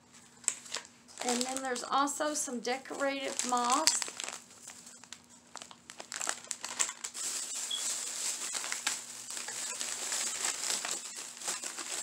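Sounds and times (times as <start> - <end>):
plastic bag crinkling: 0.4 - 2.0, 2.8 - 12.0.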